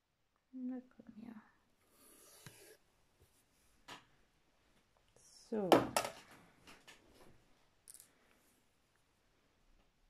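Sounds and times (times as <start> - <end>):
woman saying so: 5.2 - 6.0.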